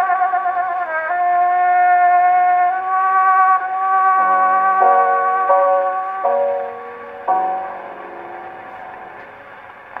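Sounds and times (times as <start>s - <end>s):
old record surface hiss: 3.6s - 10.0s
cornet and accompaniment chord: 4.2s - 9.6s.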